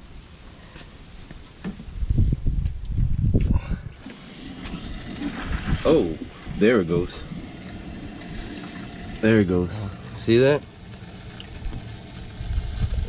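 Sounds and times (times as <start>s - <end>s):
water rushing hiss: 4.0s - 13.0s.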